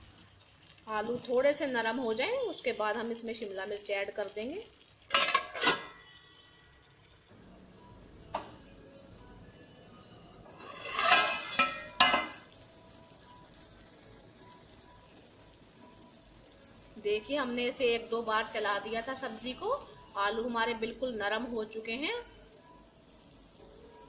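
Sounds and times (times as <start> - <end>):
faint sizzle of food cooking: 0.0 - 24.0
metal lid clattering on a pot: 5.1 - 6.0, 10.6 - 12.4.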